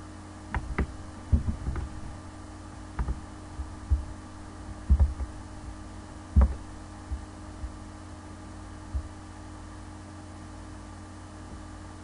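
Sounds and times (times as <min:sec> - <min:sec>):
steady low hum: 0:00.0 - 0:12.0
computer mouse clicking: 0:00.6 - 0:02.2, 0:03.0 - 0:04.1.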